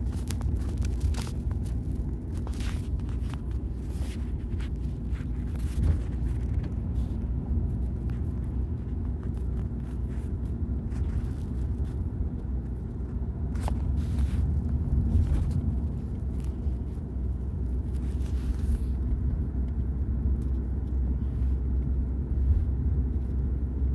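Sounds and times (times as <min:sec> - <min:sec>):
car engine rumble: 0:00.0 - 0:23.9
tyre road noise: 0:00.0 - 0:23.9.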